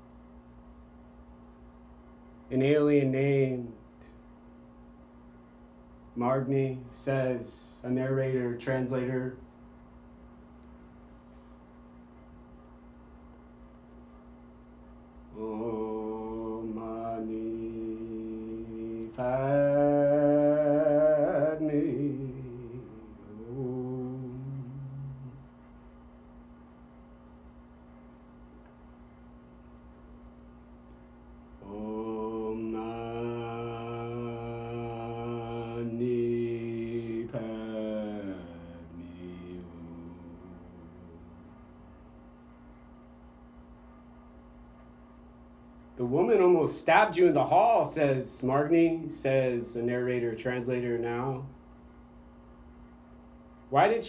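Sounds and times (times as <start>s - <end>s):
low voice chanting one note: 15.3s - 25.5s, 31.6s - 41.9s.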